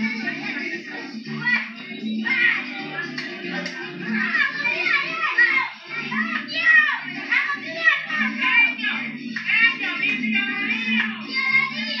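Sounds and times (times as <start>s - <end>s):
children shouting while playing: 4.1s - 8.9s, 10.7s - 12.0s.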